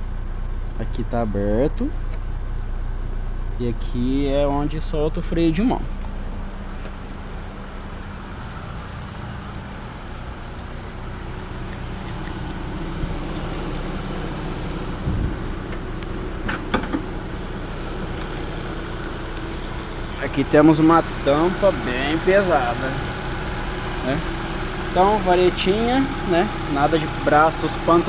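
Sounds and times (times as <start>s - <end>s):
car engine idling: 0.0s - 28.0s
engine clicks and knock: 10.6s - 21.6s.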